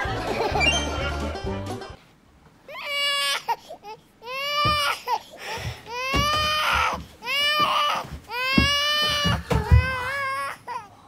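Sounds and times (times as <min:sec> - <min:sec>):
high-pitched crying wails: 0:05.9 - 0:10.9.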